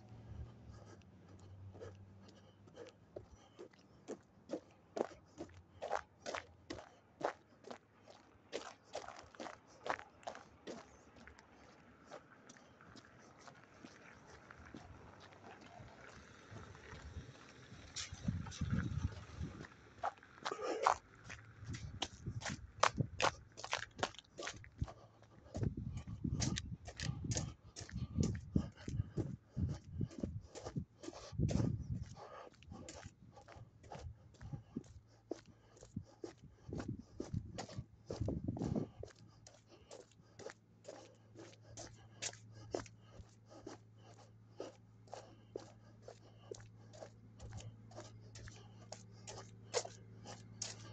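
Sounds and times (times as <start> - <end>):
footsteps on wet icy pavement: 0.0 - 50.9.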